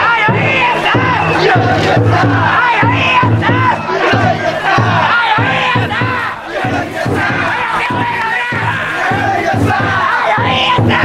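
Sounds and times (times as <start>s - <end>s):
people shouting and chanting: 0.0s - 11.0s
taiko drum beat: 0.0s - 11.0s.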